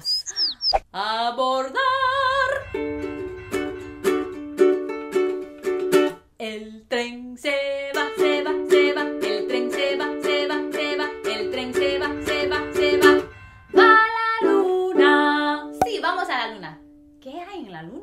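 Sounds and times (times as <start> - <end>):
ukulele strumming: 1.9 - 6.2, 7.9 - 16.4.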